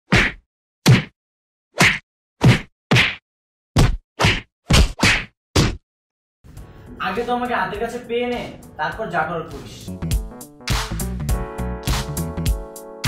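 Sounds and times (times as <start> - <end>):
sharp fight hit whacks: 0.1 - 1.1, 1.8 - 3.2, 3.8 - 5.8.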